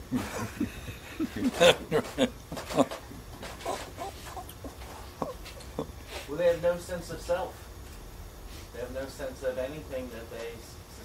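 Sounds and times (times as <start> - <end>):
people laughing softly: 0.1 - 3.0.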